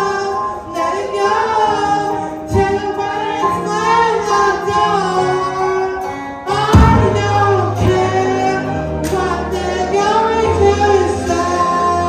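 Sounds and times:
instrumental accompaniment: 0.0s - 12.0s
person singing into microphone: 0.0s - 12.0s.

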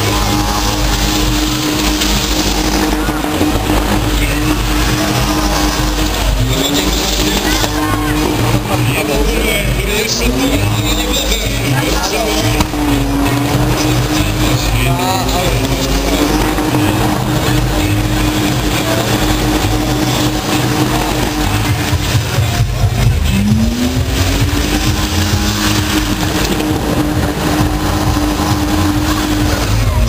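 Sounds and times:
car engine at high revs: 0.0s - 30.0s
tyres spinning: 0.0s - 30.0s.

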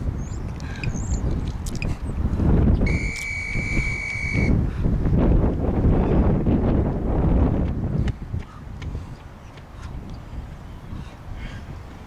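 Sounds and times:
gusty wind on microphone: 0.0s - 12.0s.

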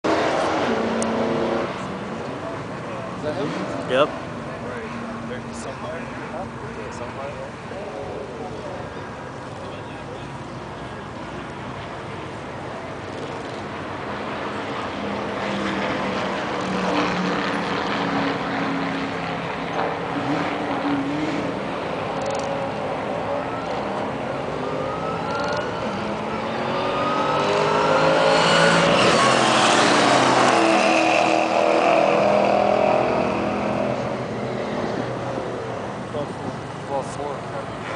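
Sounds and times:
cars accelerating hard: 0.0s - 12.4s, 13.0s - 37.9s.

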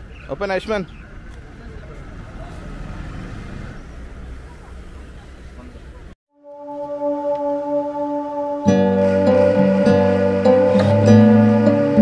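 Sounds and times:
faint voices: 0.0s - 6.2s
vehicle engine rumbling: 0.0s - 6.2s.

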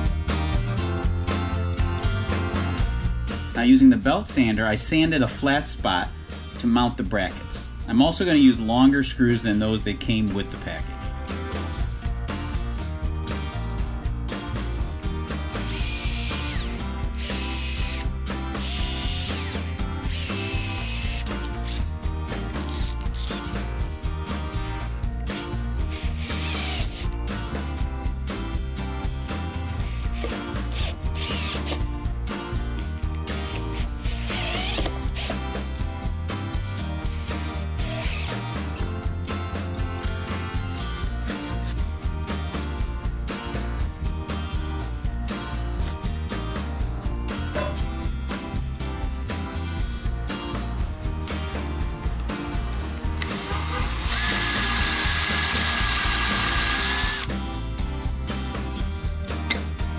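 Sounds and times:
background music: 0.0s - 59.9s
cordless drill driving screws: 15.6s - 21.8s, 22.6s - 23.5s, 25.9s - 27.2s, 29.8s - 31.8s, 33.4s - 35.4s, 37.2s - 38.4s, 53.2s - 57.3s.

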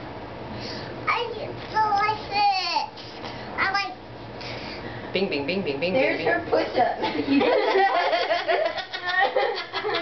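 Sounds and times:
people laughing: 7.0s - 10.0s.

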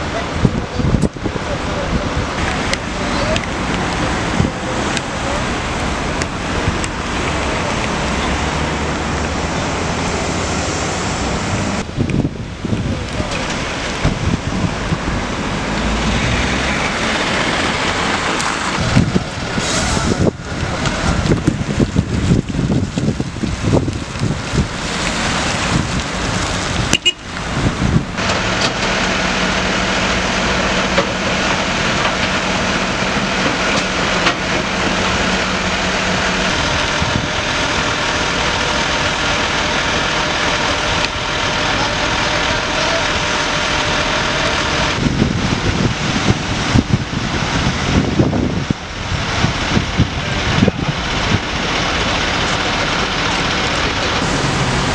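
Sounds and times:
wind buffeting microphone: 0.0s - 28.5s, 31.8s - 38.0s, 43.9s - 52.4s
truck engine and hydraulic drone: 0.0s - 54.9s.

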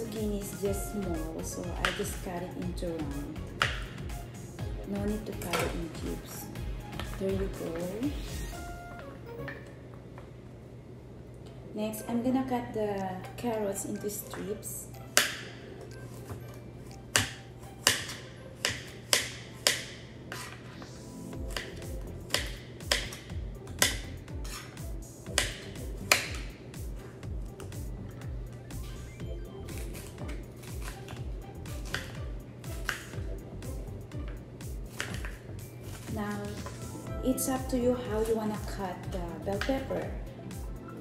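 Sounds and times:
background music with steady beat: 0.0s - 10.4s, 11.4s - 41.0s
knife chopping carrot on board: 3.5s - 4.0s, 17.1s - 20.6s, 21.5s - 26.5s, 31.8s - 33.2s, 34.9s - 36.8s.

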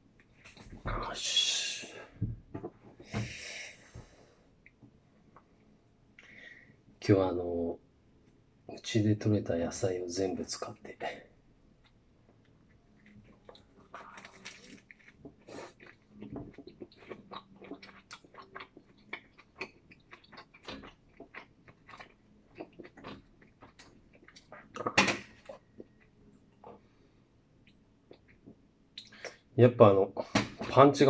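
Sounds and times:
person chewing a sandwich: 11.8s - 29.5s.

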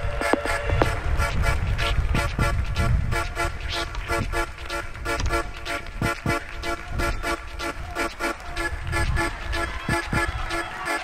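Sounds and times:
low beat: 0.0s - 11.0s
repeated pitched notes: 0.0s - 11.0s.

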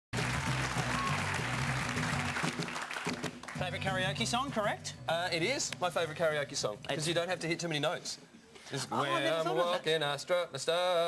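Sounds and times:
studio audience applauding: 0.1s - 4.2s
music with bass line: 0.2s - 2.6s.

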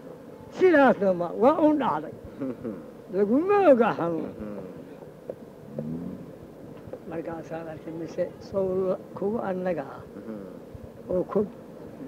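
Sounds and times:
recording hum and hiss: 0.0s - 12.0s
man murmuring: 2.3s - 2.9s, 4.2s - 4.9s, 10.0s - 10.7s.

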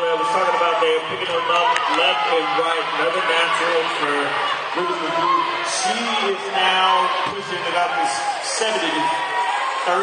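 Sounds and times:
man commentating: 0.0s - 10.0s.

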